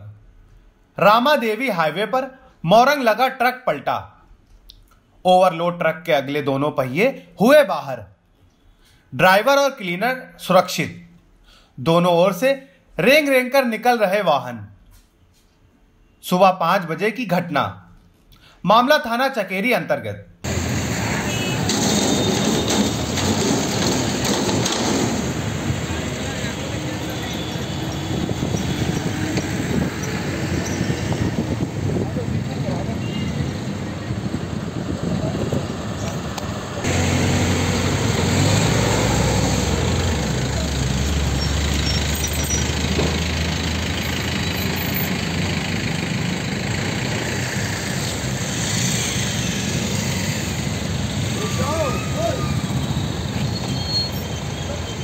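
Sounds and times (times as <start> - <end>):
highway traffic: 20.4 - 55.0
heavy vehicle engine rumbling: 20.5 - 55.0
people's voices: 25.7 - 28.1.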